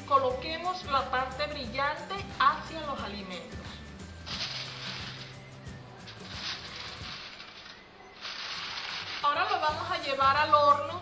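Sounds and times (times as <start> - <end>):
soft background music: 0.0 - 11.0
aluminium foil crinkling: 4.3 - 10.0.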